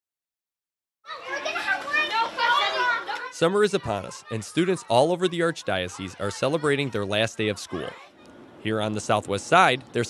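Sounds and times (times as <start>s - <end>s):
children chattering and calling out: 1.1s - 10.0s.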